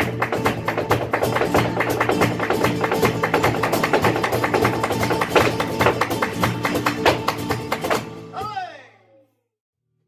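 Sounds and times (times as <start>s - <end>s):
dancer's rapid footwork taps: 0.0s - 8.1s
hand-clapping: 0.0s - 8.2s
cajon drum: 0.0s - 8.6s
flamenco guitar: 0.0s - 8.8s.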